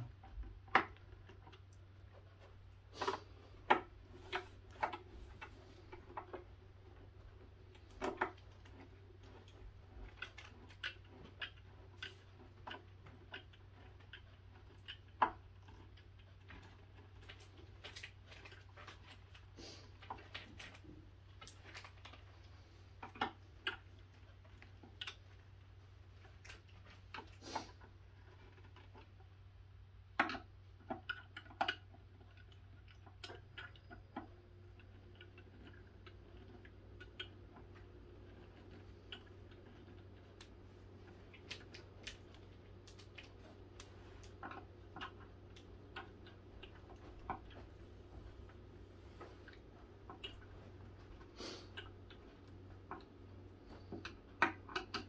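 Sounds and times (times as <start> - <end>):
faint low hum: 0.0 - 55.0
light clicks and small knocks: 0.0 - 55.0.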